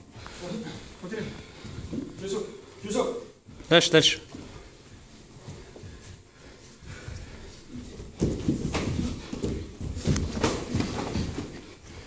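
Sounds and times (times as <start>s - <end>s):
bare feet thudding on floor: 6.8s - 12.0s.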